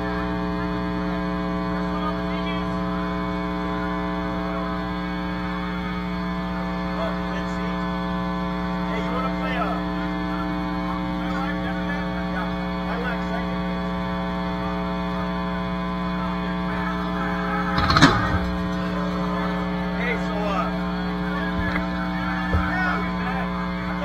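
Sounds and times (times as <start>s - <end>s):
amplifier hum and buzz: 0.0s - 24.0s
faint crowd chatter: 8.7s - 24.0s.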